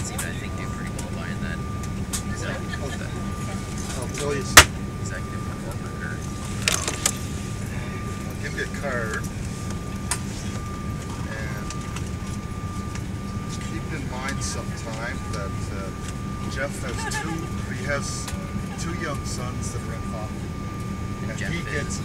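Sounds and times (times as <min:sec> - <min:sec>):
jet cabin drone with whine: 0:00.0 - 0:22.0.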